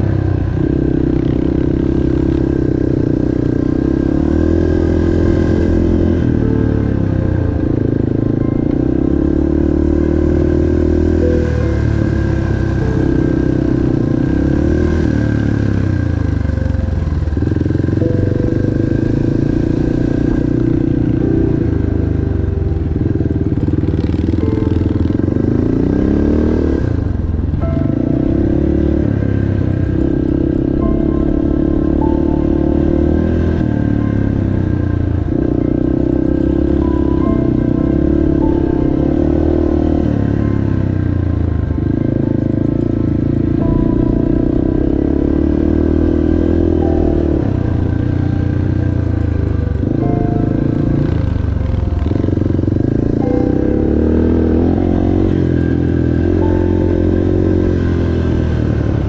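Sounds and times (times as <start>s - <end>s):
small dirt bike engine: 0.0s - 59.0s.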